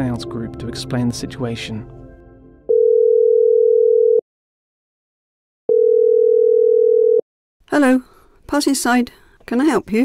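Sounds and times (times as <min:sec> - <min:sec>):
telephone ringback tone: 0:02.7 - 0:04.2, 0:05.7 - 0:07.2.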